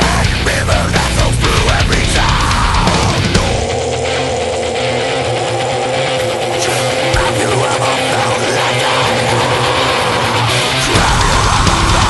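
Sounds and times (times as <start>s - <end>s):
low hum: 0.7s - 10.2s.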